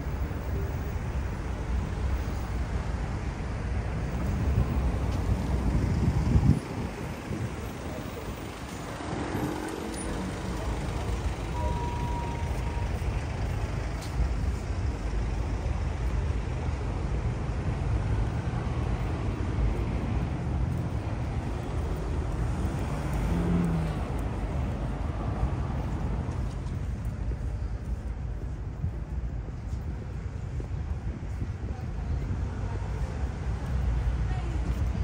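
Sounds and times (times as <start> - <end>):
passing cars rumbling: 0.0 - 35.0
high steady tone: 11.4 - 13.1.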